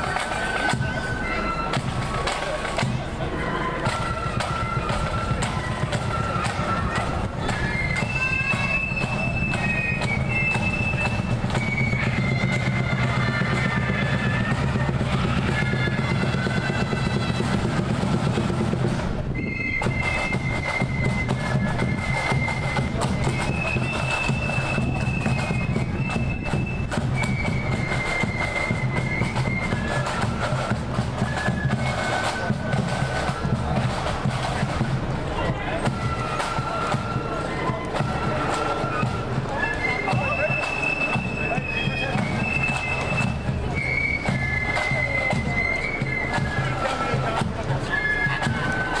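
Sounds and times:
marching band melody: 0.0s - 49.0s
steady drumming: 0.0s - 49.0s.

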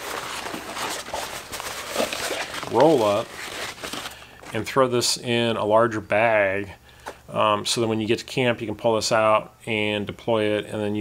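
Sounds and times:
fabric bag rustling: 0.0s - 4.6s.

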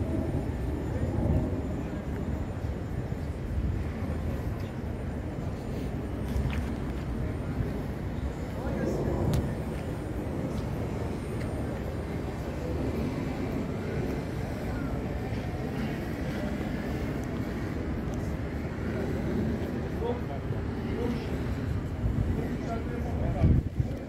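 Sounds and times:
indistinct background voices: 0.2s - 24.0s.

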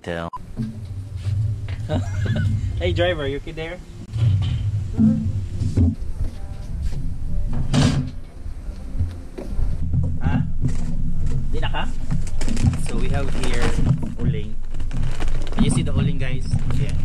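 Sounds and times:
background music: 0.0s - 16.0s
metal grate and lid clanking: 0.4s - 6.0s.

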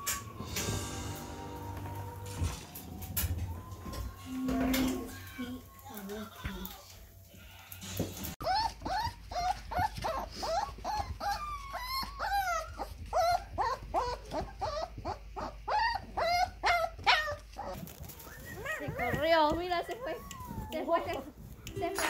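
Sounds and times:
puppies whining and yipping: 0.0s - 6.6s, 8.2s - 22.0s.

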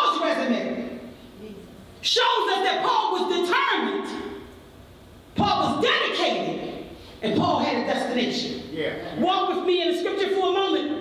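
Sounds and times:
woman preaching into a microphone: 0.0s - 4.4s, 5.4s - 11.0s.

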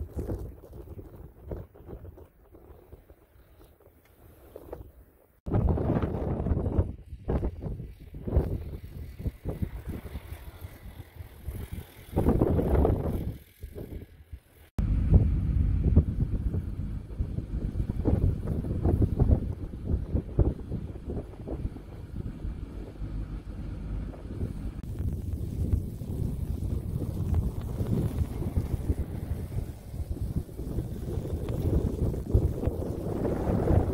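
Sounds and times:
wind buffeting microphone: 0.0s - 33.9s.

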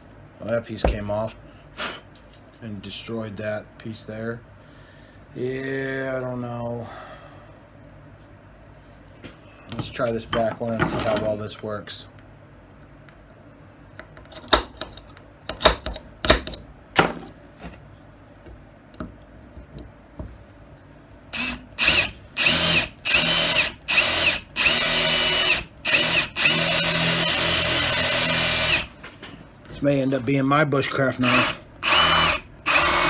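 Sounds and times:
cordless drill whining: 21.3s - 28.9s, 31.2s - 33.0s.

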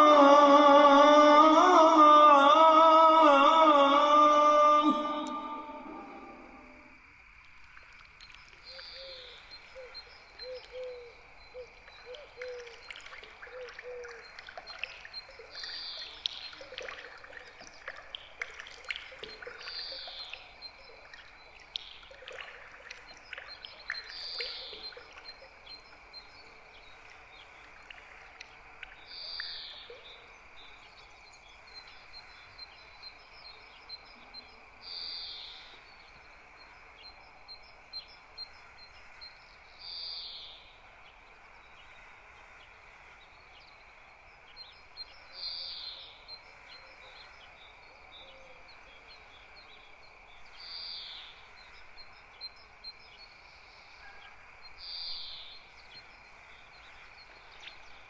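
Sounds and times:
high falling bird-like call: 0.0s - 7.0s
insects chirring: 0.0s - 58.0s.

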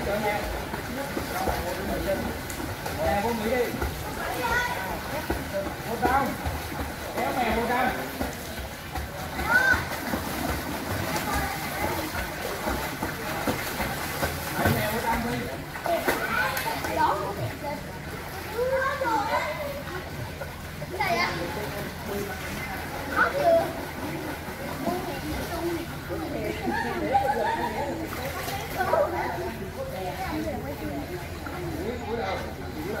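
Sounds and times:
faint distant voices: 0.0s - 33.0s
water splashing from swimmers: 0.0s - 33.0s
children chattering: 3.2s - 6.3s, 7.2s - 33.0s.

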